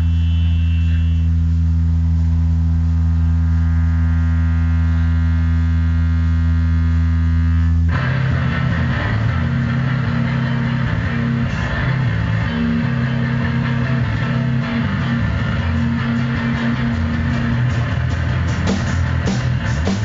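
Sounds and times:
guitar and bass drone: 0.0 - 20.0
rock band playing: 7.9 - 20.0.

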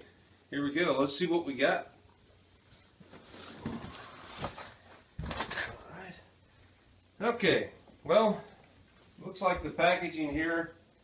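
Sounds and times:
cardboard scraping rustle: 3.0 - 5.9.

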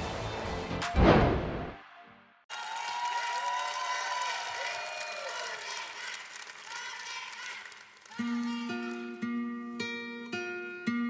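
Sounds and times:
audience cheering: 2.5 - 8.3
audience clapping: 2.5 - 9.1.

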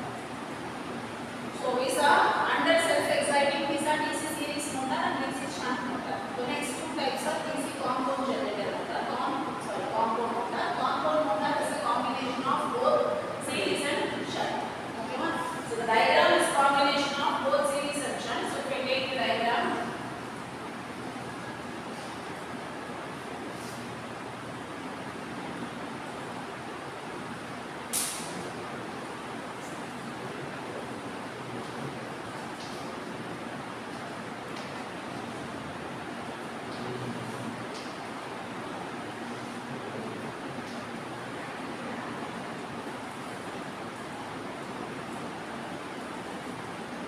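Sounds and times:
room noise hiss: 0.0 - 47.0.

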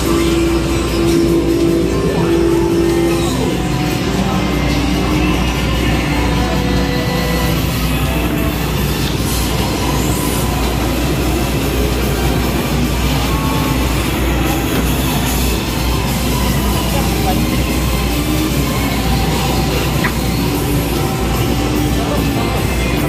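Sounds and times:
arcade motorcycle engine rumble: 0.0 - 23.0
arcade music: 0.0 - 23.0.

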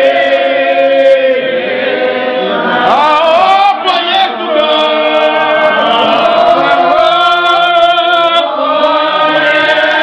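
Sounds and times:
group singing unaccompanied: 0.0 - 10.0.

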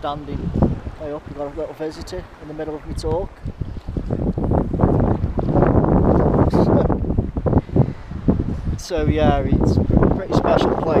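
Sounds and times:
sea water lapping: 0.0 - 11.0
wind buffeting microphone: 0.0 - 11.0.

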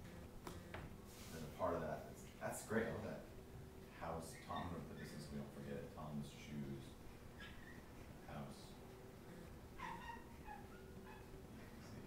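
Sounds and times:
marker squeaking on paper: 7.3 - 8.1, 9.3 - 12.0.

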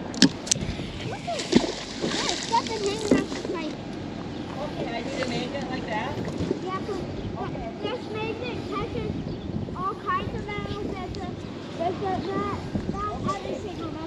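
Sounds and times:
magnet splashing into water: 1.2 - 3.5.

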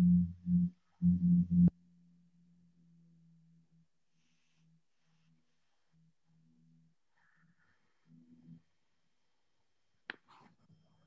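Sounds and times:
low-pitched hum: 0.0 - 1.8.

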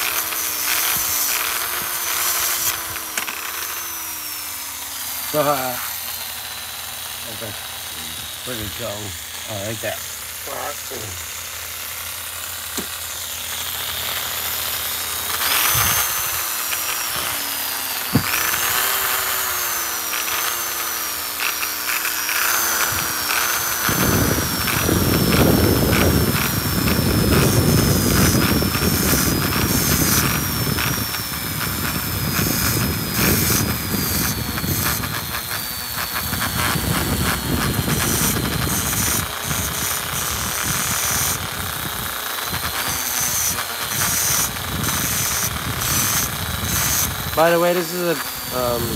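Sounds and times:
grinding rasp on metal: 0.0 - 48.9
rotary tool whine: 0.0 - 48.9.

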